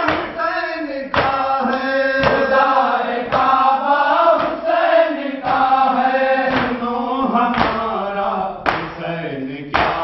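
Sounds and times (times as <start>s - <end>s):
hands beating on chest: 0.0s - 0.4s, 1.1s - 1.5s, 2.2s - 2.5s, 4.3s - 4.6s, 5.4s - 5.7s, 6.5s - 6.8s, 7.5s - 7.9s, 8.6s - 8.9s, 9.7s - 10.0s
men chanting a lament: 0.0s - 10.0s.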